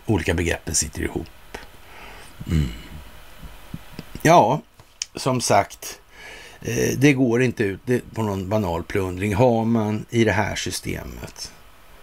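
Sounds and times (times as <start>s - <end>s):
man murmuring mm: 2.3s - 3.1s.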